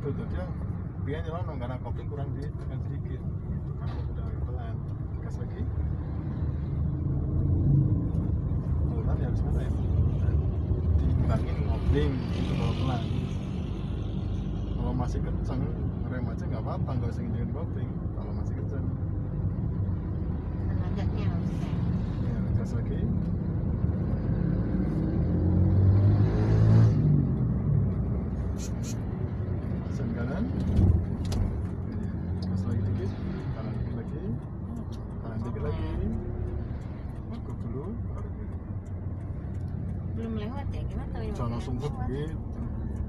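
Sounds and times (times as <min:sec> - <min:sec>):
car engine and road rumble: 0:00.0 - 0:43.0.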